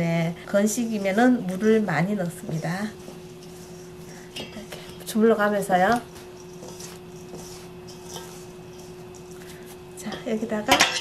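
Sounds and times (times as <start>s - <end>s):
steady low hum: 0.0s - 11.0s
hands rubbing flour in a bowl: 0.4s - 10.0s.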